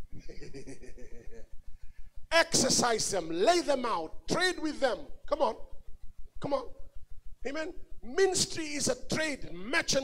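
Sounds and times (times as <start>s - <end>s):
rapid low pulsing: 0.0s - 10.0s
man laughing: 0.1s - 1.6s.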